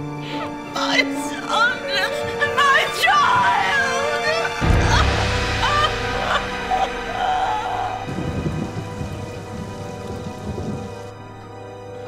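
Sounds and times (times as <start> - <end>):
orchestral sustained chord: 0.0 - 12.0
rough low rumble: 4.5 - 11.5.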